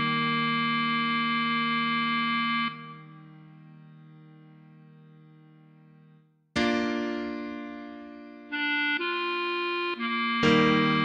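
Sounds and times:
clarinet holding low note: 0.0s - 3.3s, 8.5s - 11.0s
keyboard chord: 0.0s - 11.0s.

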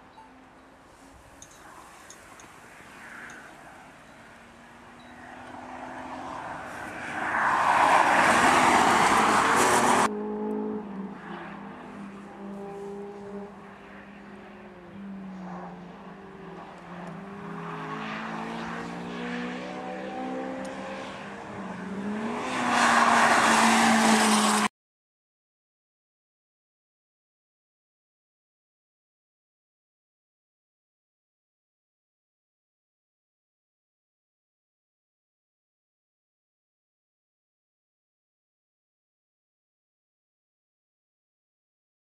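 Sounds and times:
rally cars passing at full speed: 0.2s - 24.7s
distant engine revving: 5.2s - 13.5s.

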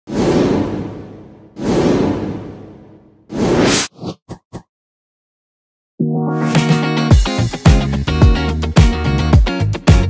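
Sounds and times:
whoosh sound effects: 0.1s - 4.2s.

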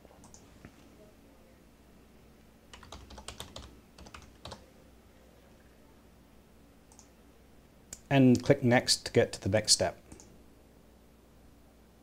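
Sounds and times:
typing on keyboard: 2.7s - 4.6s.

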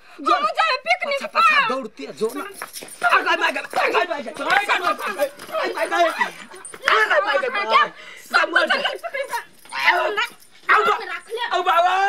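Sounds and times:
woman yelping: 5.5s - 12.0s.

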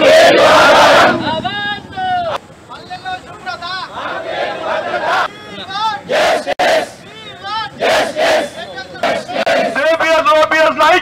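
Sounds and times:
crowd shouting slogans: 0.0s - 2.4s, 3.8s - 9.9s.

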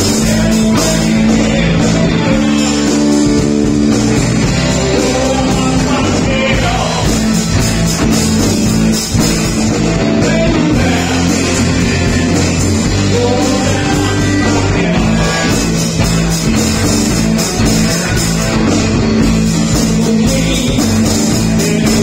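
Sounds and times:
electric guitar bending notes: 0.0s - 22.0s
rhythm and blues rock band: 0.0s - 22.0s.

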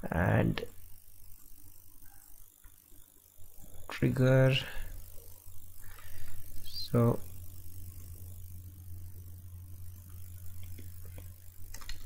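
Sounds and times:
steady low hum: 0.0s - 12.0s
faint keyboard clicks: 10.6s - 12.0s.

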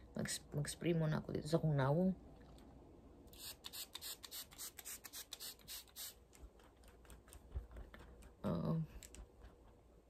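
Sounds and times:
spray bottle hissing spritzes: 3.3s - 6.2s.

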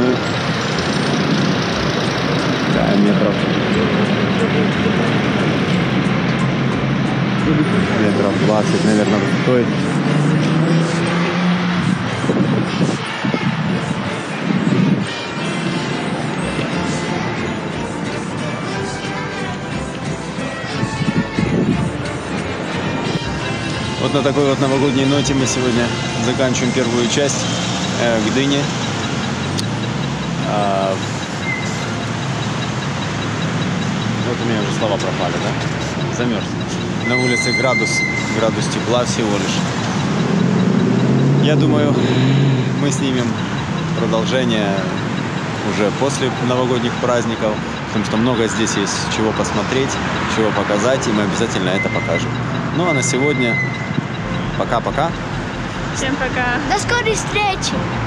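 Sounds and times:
engine humming: 0.0s - 58.0s
road traffic: 0.0s - 58.0s
street noise: 0.0s - 58.0s.

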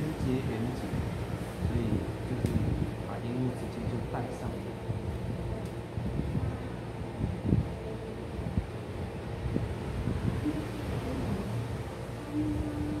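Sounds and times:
faint hum: 0.0s - 13.0s
low room rumble: 0.0s - 13.0s.

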